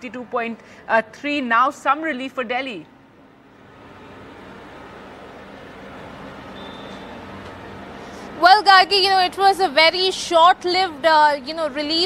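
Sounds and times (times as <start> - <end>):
distant road traffic hum: 0.0 - 12.0.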